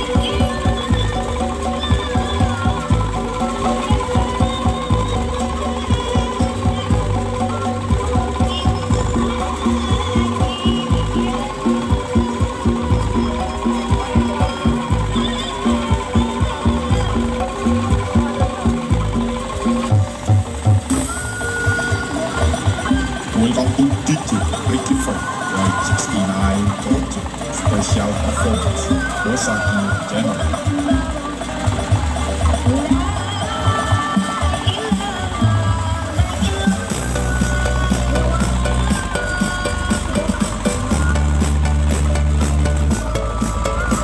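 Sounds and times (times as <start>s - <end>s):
loud dance music: 0.0s - 44.0s.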